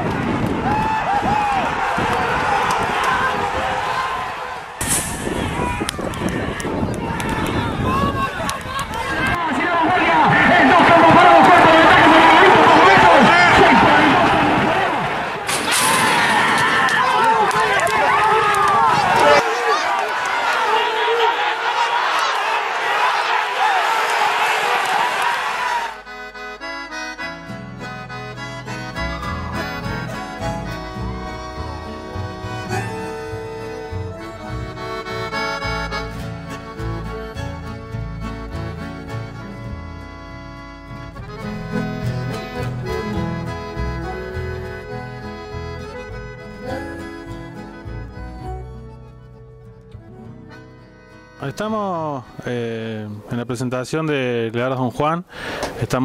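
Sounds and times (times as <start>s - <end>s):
crowd shouting and cheering: 0.0s - 26.7s, 28.6s - 36.3s
accordion music with steady beat: 26.0s - 52.5s.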